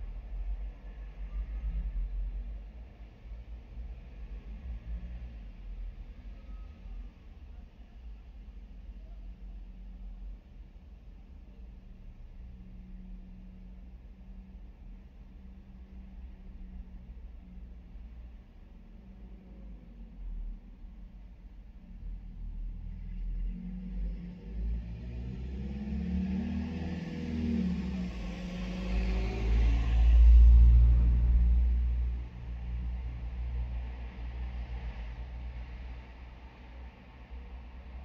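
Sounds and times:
vehicle passing by: 0:23.6 - 0:32.1.

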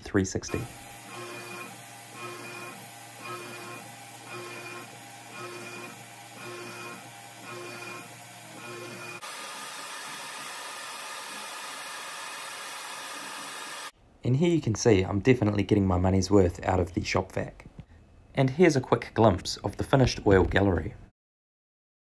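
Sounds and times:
machine hum: 0:00.5 - 0:13.9
mill cutting aluminium: 0:00.5 - 0:13.9.

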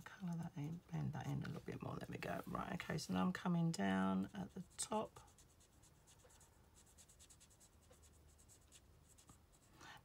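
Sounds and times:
marker nib scratching on card: 0:04.6 - 0:09.7.

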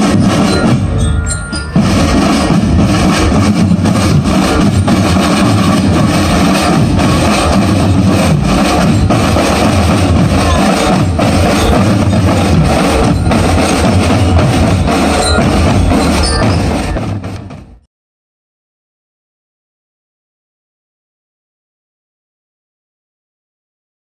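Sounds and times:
bass drums beating: 0:00.0 - 0:17.8
marching drum band: 0:00.0 - 0:17.8.

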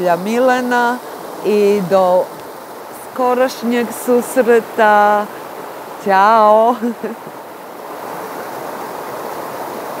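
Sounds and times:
river rushing over rocks: 0:00.0 - 0:10.0.

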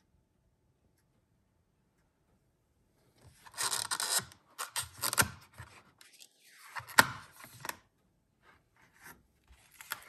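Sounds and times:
plastic packaging scraping: 0:03.4 - 0:07.6.

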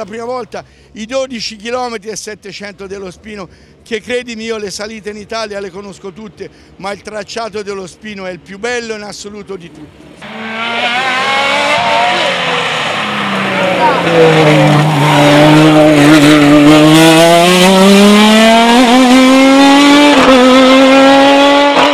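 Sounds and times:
racing car engine accelerating: 0:10.2 - 0:21.9.

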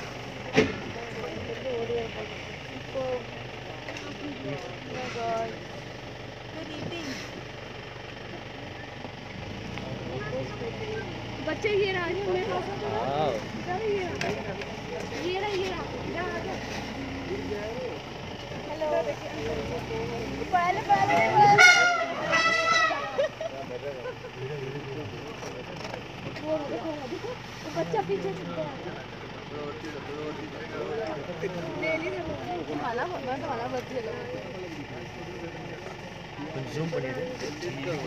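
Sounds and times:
vehicle engine idling: 0:00.0 - 0:38.0
people talking: 0:09.8 - 0:38.0.

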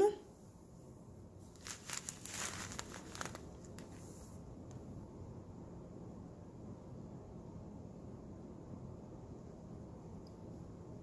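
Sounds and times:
plastic bag crinkling: 0:01.4 - 0:04.2.

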